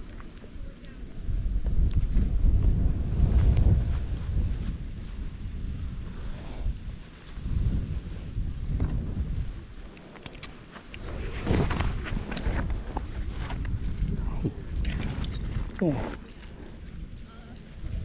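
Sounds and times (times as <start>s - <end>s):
wind buffeting microphone: 0.0s - 18.0s
crunching on loose gravel: 1.7s - 18.0s.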